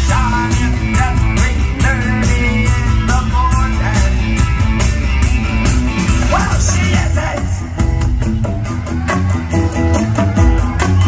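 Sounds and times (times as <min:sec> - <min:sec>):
bass: 0:00.0 - 0:11.0
steady drum beat: 0:00.0 - 0:11.0.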